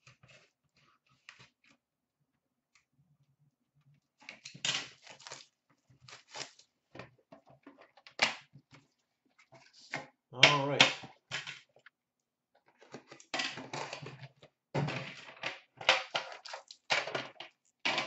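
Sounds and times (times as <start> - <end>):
foil pack rustling: 4.7 - 6.8.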